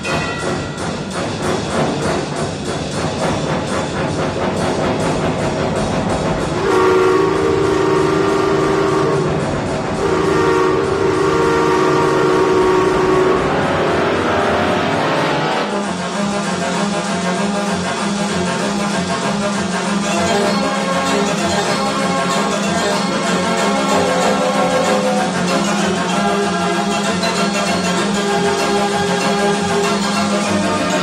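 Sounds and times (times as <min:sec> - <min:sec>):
organ chords like steam whistle: 0:00.0 - 0:31.0
theatre organ chugging rhythm: 0:15.9 - 0:31.0.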